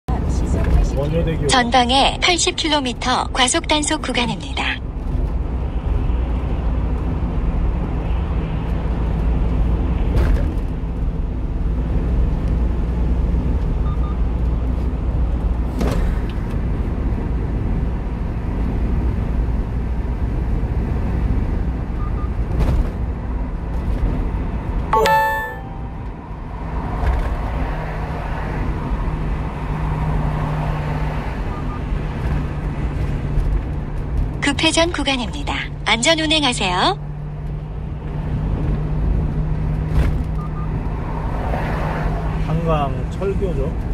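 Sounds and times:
truck engine and road noise: 0.0 - 43.9
knocks from the road: 10.1 - 10.7
brief beeping tone: 25.0 - 26.0.

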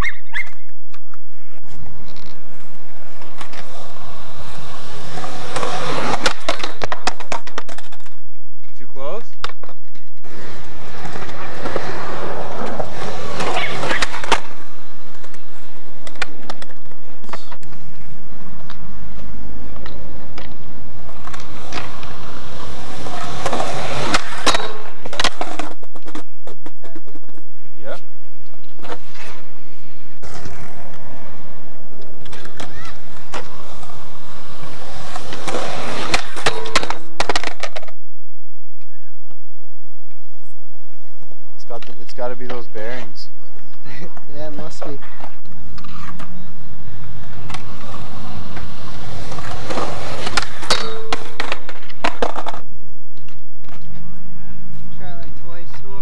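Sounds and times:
skateboard wheels rolling on concrete: 0.0 - 56.0
skateboard clacking on rail and concrete: 3.1 - 8.2, 9.3 - 17.9, 18.6 - 27.4, 30.3 - 38.0, 43.7 - 54.1.

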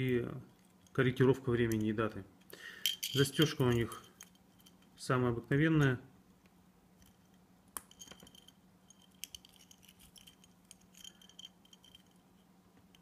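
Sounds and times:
metal watch bracelet clinking: 2.8 - 5.0, 7.0 - 13.0.

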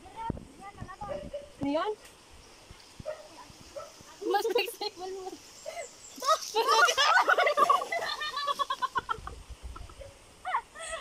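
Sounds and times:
people laughing: 5.7 - 10.0.

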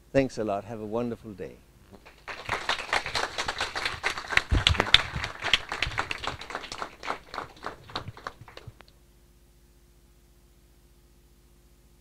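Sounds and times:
audience applauding: 2.0 - 8.8.

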